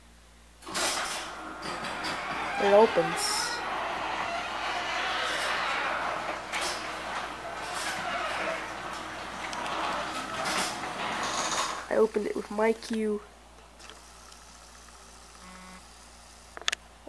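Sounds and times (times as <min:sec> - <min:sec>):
garage door opener running: 0:00.6 - 0:12.9.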